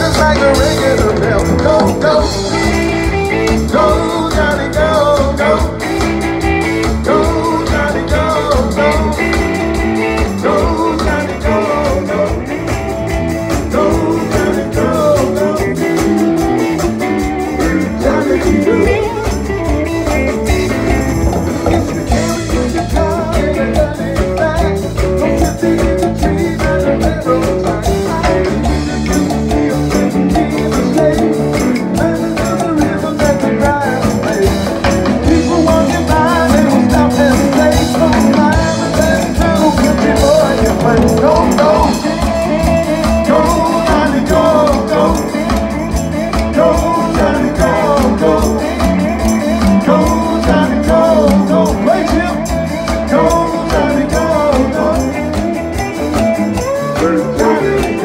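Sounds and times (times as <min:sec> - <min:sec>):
male vocal group singing: 0:00.0 - 0:58.0
rock and roll band playing: 0:00.0 - 0:58.0.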